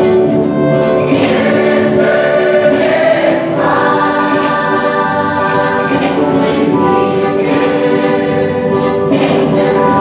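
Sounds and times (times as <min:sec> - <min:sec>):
mixed choir singing: 0:00.9 - 0:10.0.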